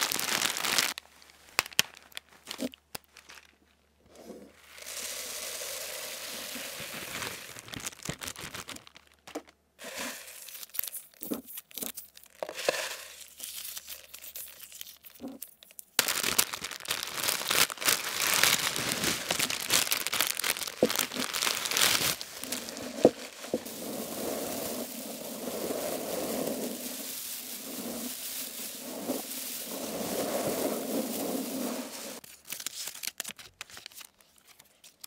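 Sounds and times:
beads pouring from bag: 0.0 - 1.0, 4.6 - 9.0, 9.8 - 15.4, 16.0 - 32.2
plastic bag crinkling: 0.0 - 3.8, 4.6 - 34.2
beads tapping and clicking: 19.8 - 23.7.

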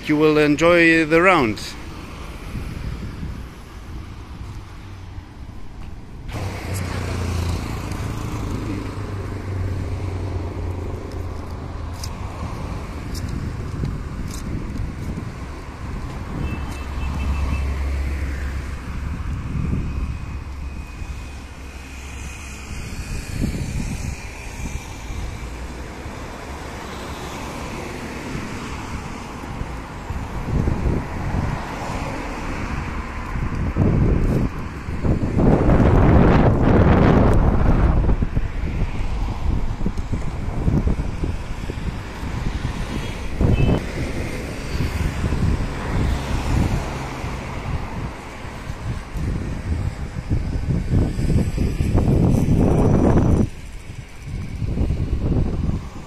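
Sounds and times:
car engines passing: 0.0 - 56.0
wind buffeting microphone: 1.3 - 56.0.

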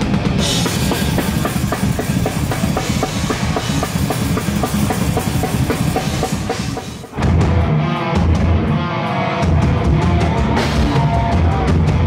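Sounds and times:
extreme metal music with fast drumming: 0.0 - 12.0.

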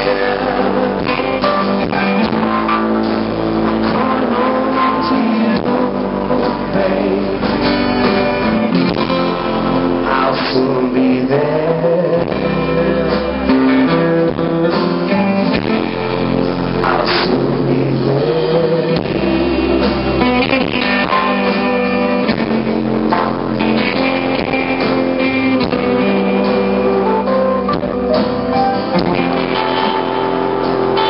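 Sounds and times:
live band playing: 0.0 - 31.0.

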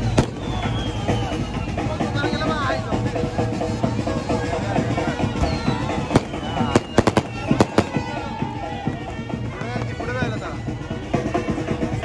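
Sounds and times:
band music: 0.0 - 10.3
crowd voices: 0.0 - 12.0
firecrackers banging: 6.0 - 8.2.

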